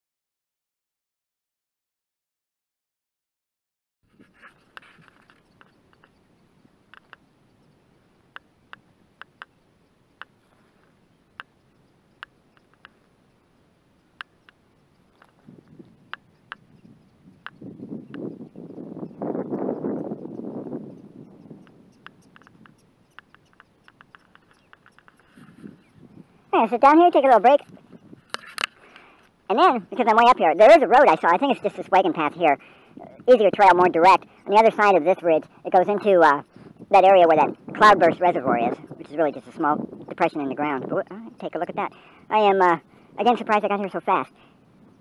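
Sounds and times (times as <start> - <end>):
prairie dogs barking: 4.4 - 45.0
wind on microphone: 14.8 - 28.9, 29.5 - 45.0.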